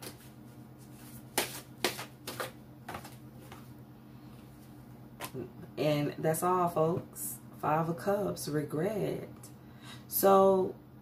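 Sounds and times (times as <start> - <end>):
cards shuffled by hand: 0.9 - 3.7.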